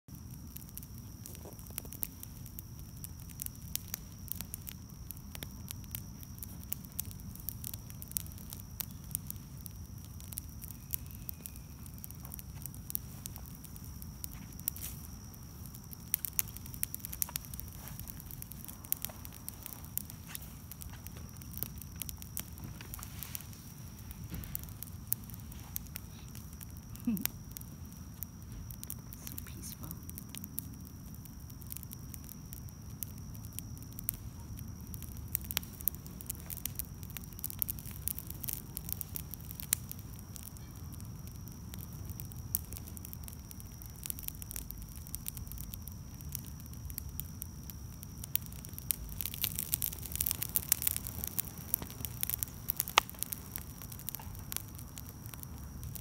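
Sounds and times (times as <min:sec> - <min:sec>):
fire crackling and popping: 0:00.0 - 0:56.0.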